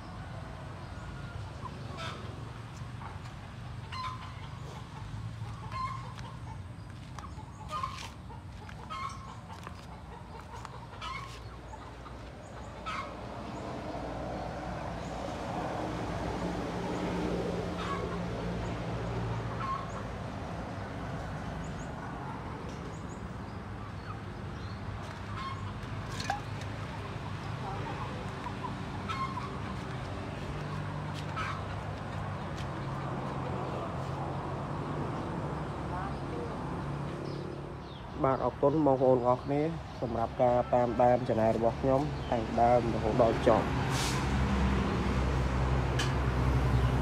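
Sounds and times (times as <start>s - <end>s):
chickens clucking: 1.6s - 14.0s, 17.7s - 18.4s, 19.1s - 20.1s, 21.7s - 34.4s.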